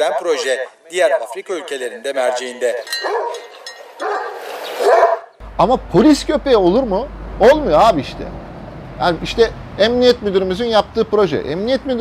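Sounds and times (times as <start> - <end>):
dog barking: 3.0 - 5.4.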